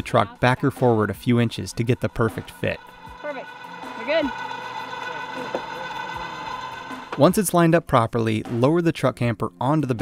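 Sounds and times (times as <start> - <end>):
electric jack motors whining: 1.3 - 7.3.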